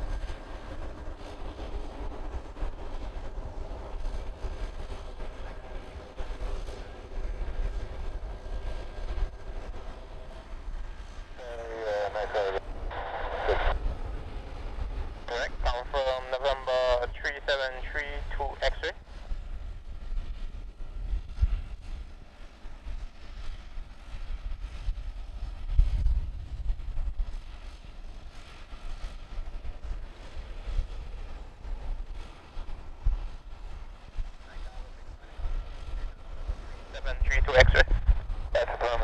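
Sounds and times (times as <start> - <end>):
wind buffeting microphone: 0.0 - 11.3, 19.0 - 39.0
turboprop engines idling: 0.0 - 39.0
voice on radio: 11.4 - 13.8, 15.3 - 19.0, 36.6 - 39.0.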